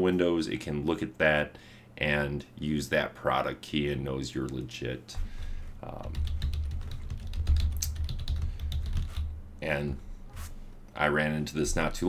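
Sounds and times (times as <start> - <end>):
keyboard typing: 5.9 - 9.3.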